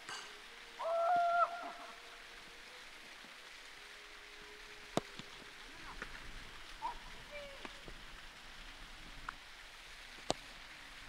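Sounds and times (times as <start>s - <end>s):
quiet outdoor background: 0.0s - 11.0s.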